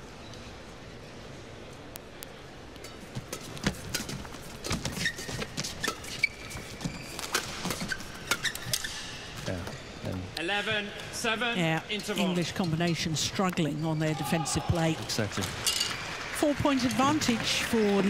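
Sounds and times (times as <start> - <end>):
shoes squeaking on court: 3.0 - 10.3.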